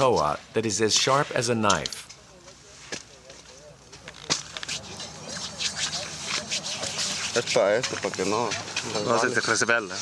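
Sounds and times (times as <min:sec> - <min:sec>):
low quiet voices: 0:02.0 - 0:10.0.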